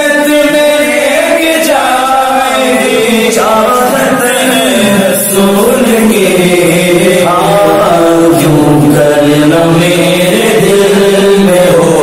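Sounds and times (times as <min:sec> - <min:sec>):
man singing devotional chant: 0:00.0 - 0:12.0.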